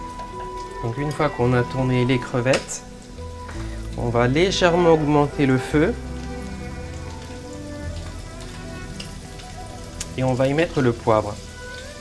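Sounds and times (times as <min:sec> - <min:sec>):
shrimp sizzling in hot oil: 0:00.0 - 0:12.0
soft background music: 0:00.0 - 0:12.0.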